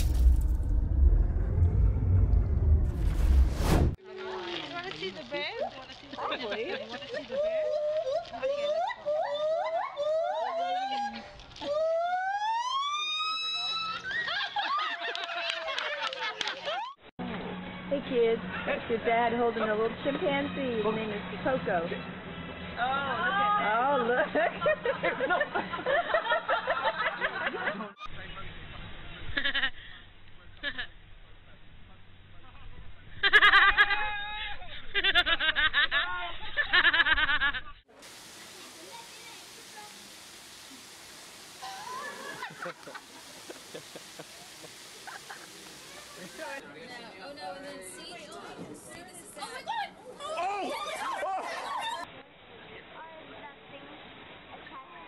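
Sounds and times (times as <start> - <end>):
deep low rumble: 0.0 - 4.0.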